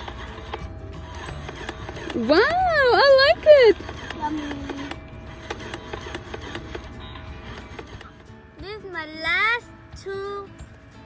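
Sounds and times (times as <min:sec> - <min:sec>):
plastic toy and cardboard clicks: 0:00.0 - 0:08.2.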